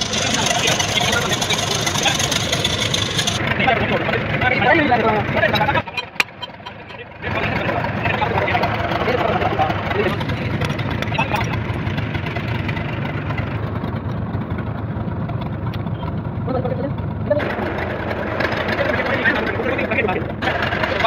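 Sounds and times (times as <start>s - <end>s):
people's voices: 0.0s - 11.8s, 15.9s - 21.0s
engine idling: 0.0s - 21.0s.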